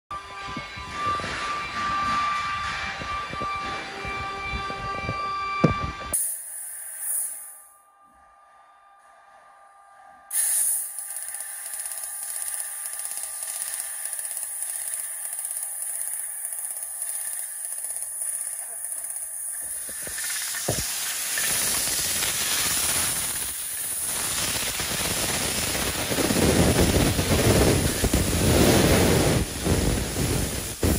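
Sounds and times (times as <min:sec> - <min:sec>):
machine whine of several tones: 0:00.2 - 0:22.6
laser cutting head hiss: 0:06.2 - 0:07.7, 0:10.3 - 0:30.9
workshop noise: 0:10.3 - 0:24.0.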